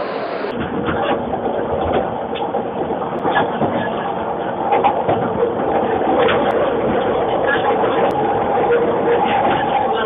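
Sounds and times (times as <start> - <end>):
train carriage rumble: 0.0 - 10.0.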